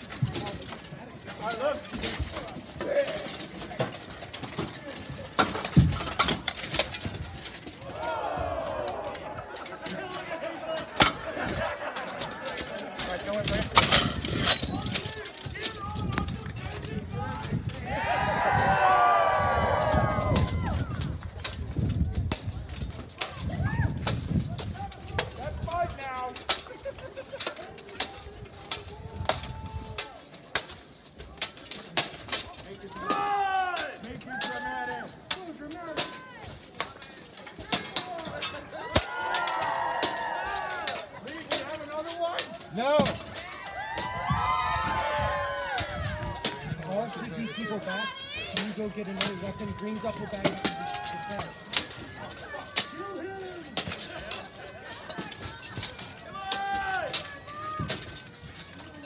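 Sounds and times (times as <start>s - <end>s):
weapons clanging on metal armour: 0.0s - 59.0s
people shouting: 7.8s - 13.0s, 17.0s - 21.1s, 28.0s - 30.2s, 32.8s - 35.2s, 37.8s - 58.1s.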